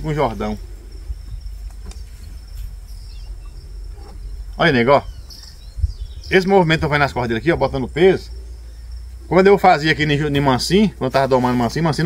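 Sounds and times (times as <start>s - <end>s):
insects buzzing: 0.0s - 12.0s
low background rumble: 0.0s - 12.0s.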